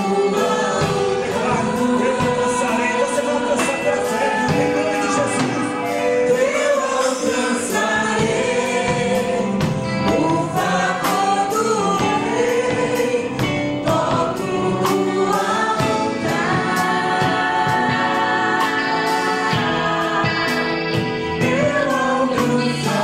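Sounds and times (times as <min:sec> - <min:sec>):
electric guitar: 0:00.0 - 0:23.0
group singing gospel: 0:00.0 - 0:23.0
keyboard: 0:00.0 - 0:23.0
steady drum beat: 0:00.0 - 0:23.0.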